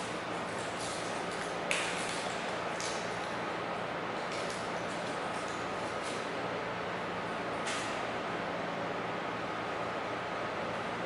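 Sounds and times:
room hum and hiss: 0.0 - 11.0.

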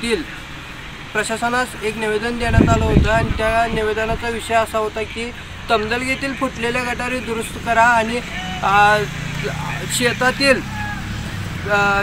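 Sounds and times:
man speaking: 0.0 - 0.4, 1.1 - 10.7, 11.6 - 12.0.

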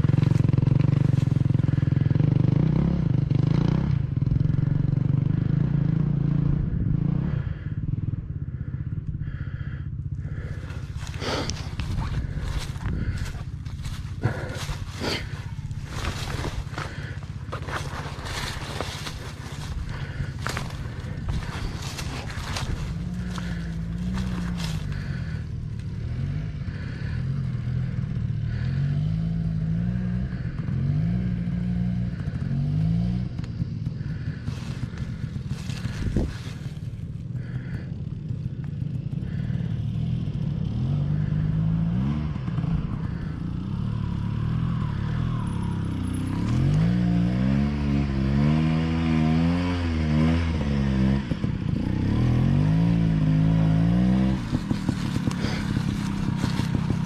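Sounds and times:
dirt bike engine revving: 0.0 - 57.0.

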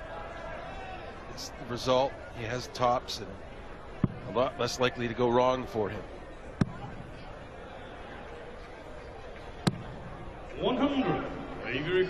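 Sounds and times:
low murmur in hall: 0.0 - 12.0.

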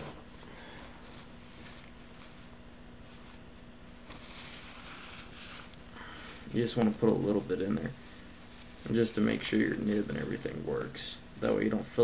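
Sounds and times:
gloved hands rustling: 0.0 - 12.0
steady low hum and hiss: 0.0 - 12.0.

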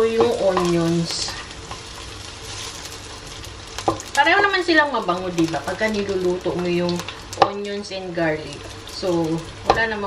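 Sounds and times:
onions sizzling in hot oil: 0.0 - 10.0.

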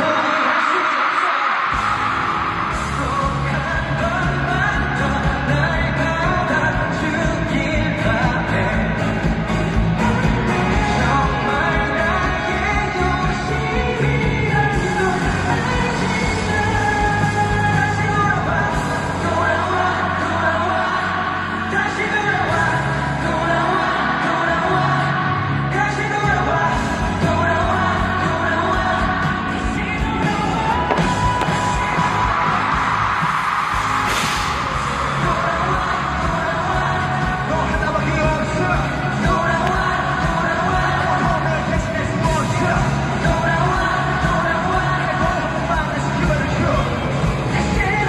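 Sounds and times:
pop backing track: 0.0 - 48.0
man singing into microphone: 1.9 - 32.3, 34.6 - 48.0
hissing swell to sharp hit: 34.0 - 34.9.

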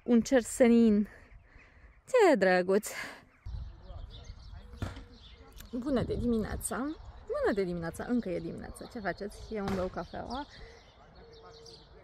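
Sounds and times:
wind rumble on microphone: 3.4 - 9.6.

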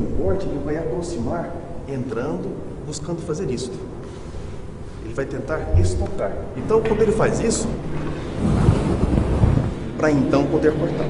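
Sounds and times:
low rumbling on microphone: 4.6 - 11.0.

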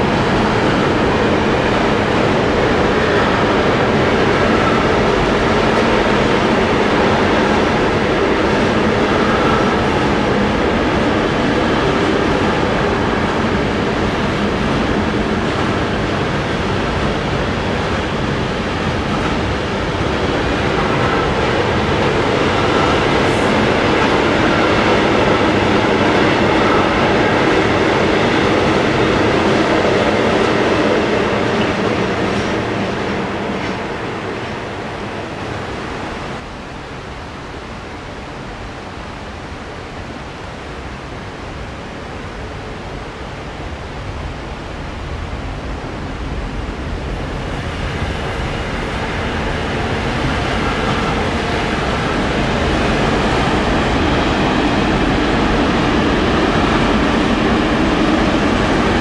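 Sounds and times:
electric train approaching: 0.0 - 59.0
freight train rolling past: 0.0 - 59.0.

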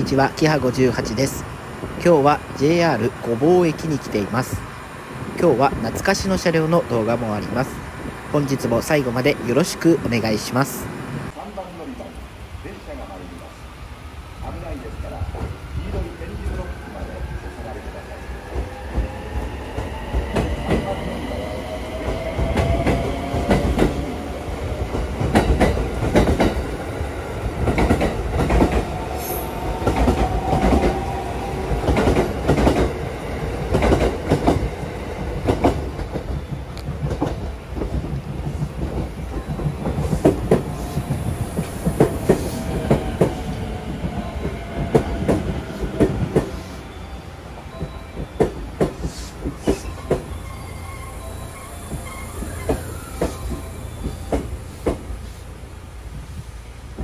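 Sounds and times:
train rumble: 0.0 - 57.0
train whine sliding down: 13.4 - 57.0.

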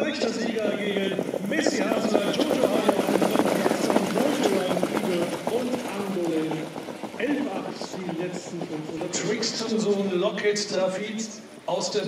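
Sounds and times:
hoofbeats on sand: 0.0 - 10.4
voices: 0.0 - 12.0.

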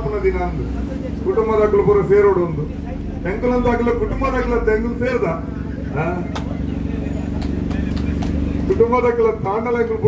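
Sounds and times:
constant hum: 0.0 - 10.0
low mechanical rumble: 0.0 - 10.0.

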